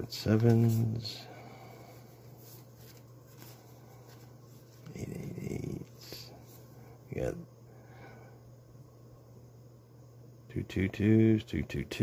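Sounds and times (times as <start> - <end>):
banknotes rustling and crinkling: 0.0 - 6.7
low steady hum: 0.0 - 12.0.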